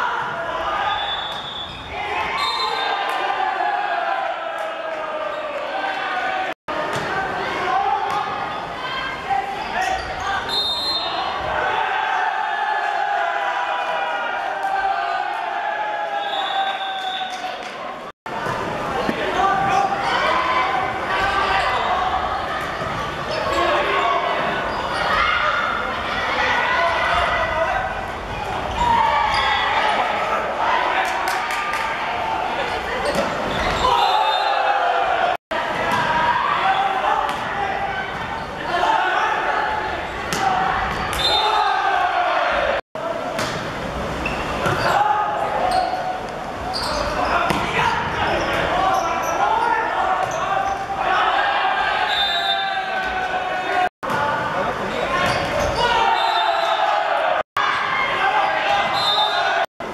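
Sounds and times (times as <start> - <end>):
shouting and cheering voices: 0.0 - 59.9.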